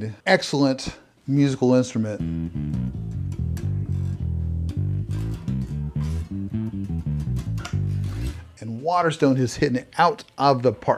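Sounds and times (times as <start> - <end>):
electric bass plucked notes: 2.0 - 8.6.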